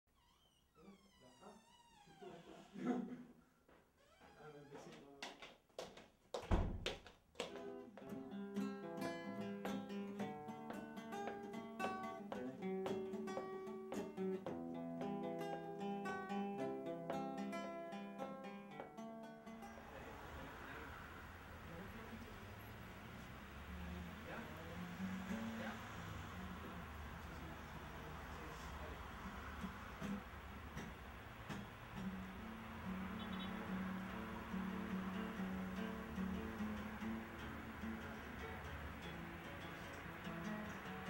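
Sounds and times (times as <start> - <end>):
person laughing: 2.2 - 3.4
acoustic guitar plucking: 7.6 - 41.0.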